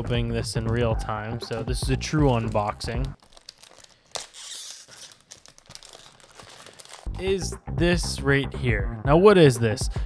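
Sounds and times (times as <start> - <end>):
packaging bag tearing and crinkling: 1.5 - 7.1.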